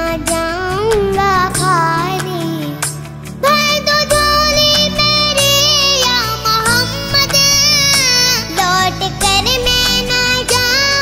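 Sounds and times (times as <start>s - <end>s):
girl singing: 0.0s - 11.0s
low instrumental backing: 0.0s - 11.0s.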